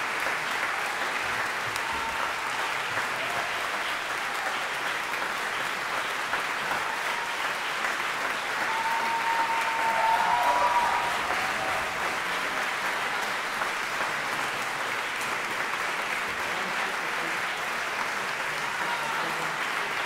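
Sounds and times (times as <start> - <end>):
audience applauding: 0.0 - 20.0.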